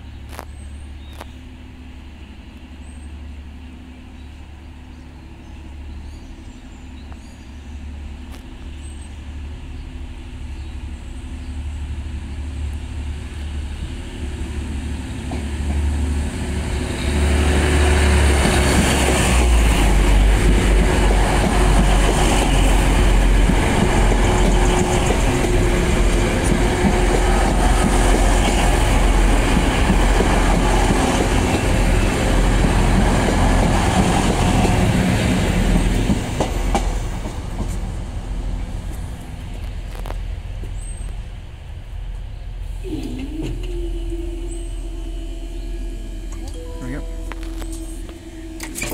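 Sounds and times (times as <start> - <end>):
diesel train engine passing: 0.0 - 48.9
train wheel noise: 8.0 - 48.9.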